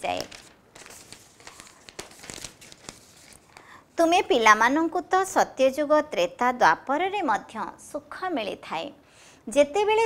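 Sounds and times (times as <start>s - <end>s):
paper sheets rustling: 0.0s - 3.7s.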